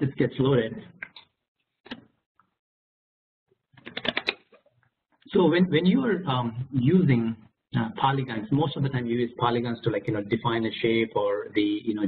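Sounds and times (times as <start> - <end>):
keyboard and mouse clicks: 3.8 - 4.7.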